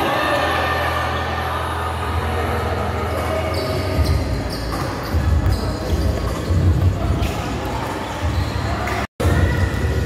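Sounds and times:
voices in a hall: 0:00.0 - 0:10.0
basketball bouncing on court: 0:04.0 - 0:10.0.

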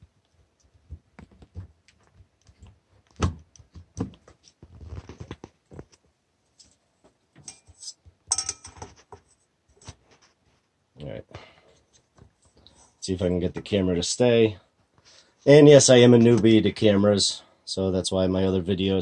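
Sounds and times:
metallic clatter with ring: 0:07.4 - 0:09.0.

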